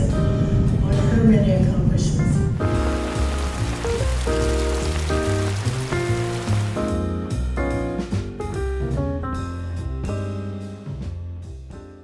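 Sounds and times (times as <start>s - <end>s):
fountain water jets splashing: 2.6s - 7.0s
background music with chords and bass: 2.6s - 12.0s.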